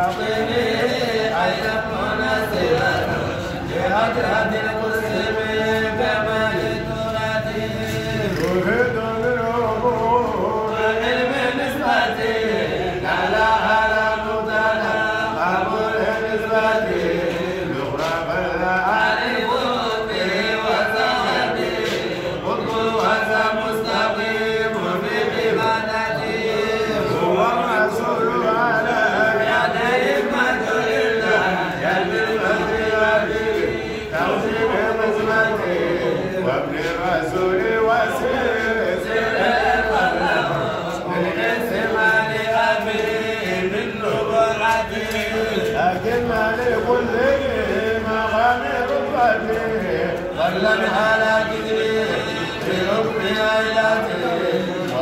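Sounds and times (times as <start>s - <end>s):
man chanting: 0.0s - 55.0s.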